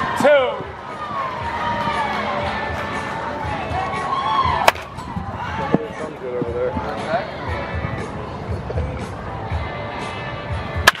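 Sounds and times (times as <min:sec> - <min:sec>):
bat hitting baseball: 0:04.6 - 0:05.8, 0:10.8 - 0:11.0.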